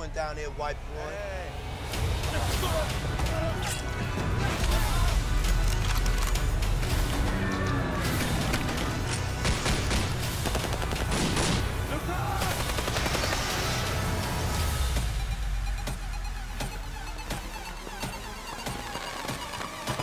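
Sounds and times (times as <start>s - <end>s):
rapid gunfire: 8.2s - 14.0s.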